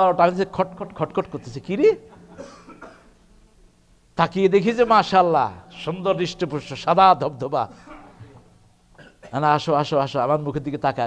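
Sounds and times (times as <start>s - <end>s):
low steady hum: 0.0s - 11.0s
faint short cough: 2.3s - 3.1s, 7.7s - 8.4s, 9.0s - 9.4s.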